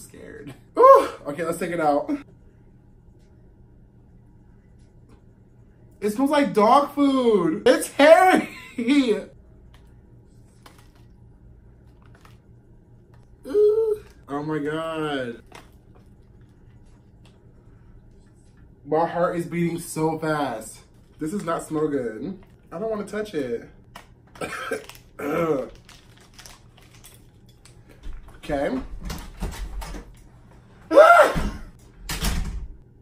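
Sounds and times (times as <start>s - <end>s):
low steady hum: 0.0s - 33.0s
plastic package clicks and crinkles: 10.6s - 11.1s, 11.9s - 12.4s, 15.4s - 16.5s, 23.9s - 28.0s.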